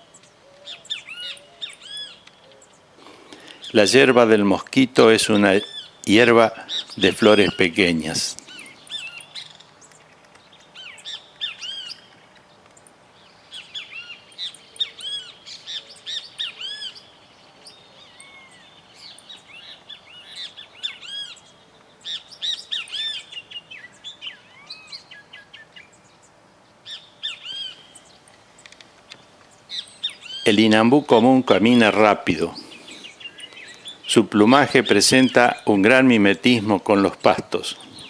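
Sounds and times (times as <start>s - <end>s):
birds chirping: 0.0s - 38.0s.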